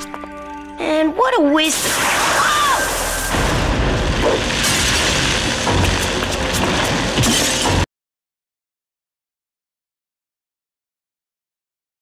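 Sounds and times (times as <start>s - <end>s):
cartoon explosion boom and rumble: 1.7s - 7.6s
dramatic soundtrack music: 2.9s - 7.9s.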